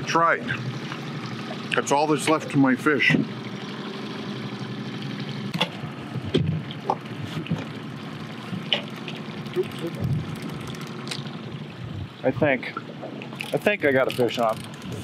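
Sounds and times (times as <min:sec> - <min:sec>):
outboard motor running: 0:00.0 - 0:15.0
water sloshing against hull: 0:00.1 - 0:15.0.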